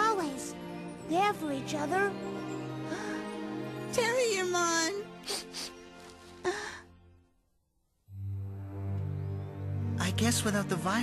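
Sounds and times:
soft music: 0:00.0 - 0:11.0.

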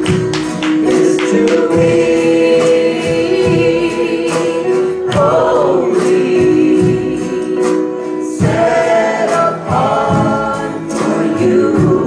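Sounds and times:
percussive strikes: 0:00.0 - 0:12.0
worship band playing: 0:00.0 - 0:12.0.

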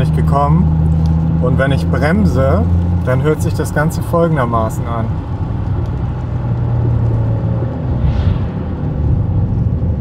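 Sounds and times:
road and drivetrain rumble: 0:00.0 - 0:10.0.

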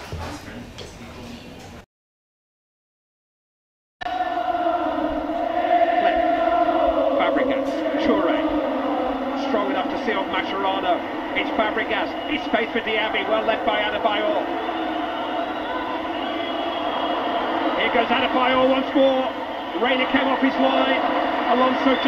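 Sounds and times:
stadium crowd noise: 0:04.1 - 0:22.0
commentator speaking: 0:09.3 - 0:14.6, 0:17.8 - 0:22.0.

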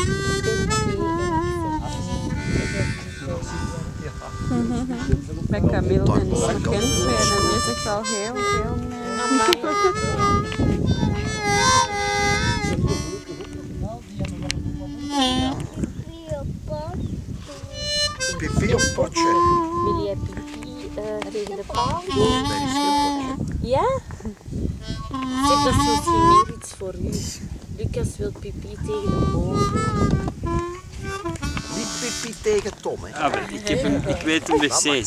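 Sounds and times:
harmonica playing blues: 0:00.0 - 0:16.3, 0:17.4 - 0:23.9, 0:24.8 - 0:27.3, 0:28.7 - 0:35.0.

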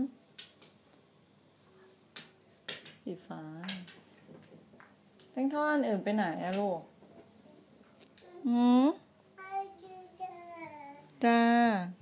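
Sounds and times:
toddler sing-song babble: 0:09.4 - 0:11.2.

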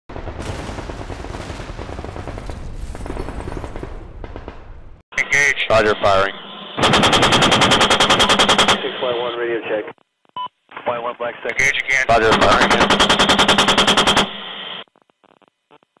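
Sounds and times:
rapid gunfire: 0:00.1 - 0:05.0, 0:06.8 - 0:08.8, 0:12.2 - 0:14.4
radio hiss: 0:05.2 - 0:06.8, 0:08.7 - 0:10.0, 0:10.7 - 0:12.8
faint radio crackles: 0:08.8 - 0:12.6, 0:14.8 - 0:16.0.

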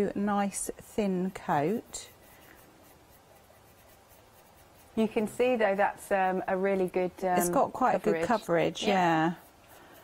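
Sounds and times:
paintbrush swishing: 0:00.0 - 0:10.0.

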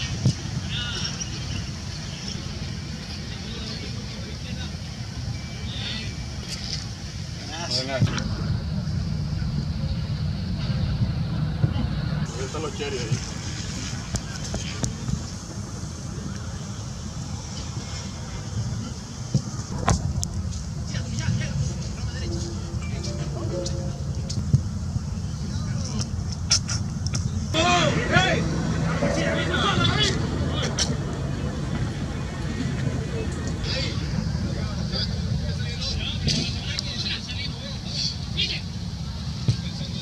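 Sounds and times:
faint distant voices: 0:00.0 - 0:40.0
wind rumble on microphone: 0:06.4 - 0:37.2.

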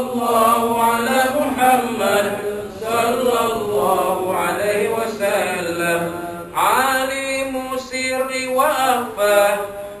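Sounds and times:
man chanting unaccompanied: 0:00.0 - 0:10.0.

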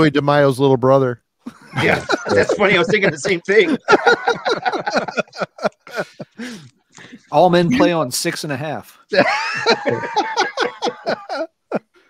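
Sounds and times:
man laughing: 0:01.5 - 0:06.6, 0:07.7 - 0:08.0, 0:09.1 - 0:12.0.

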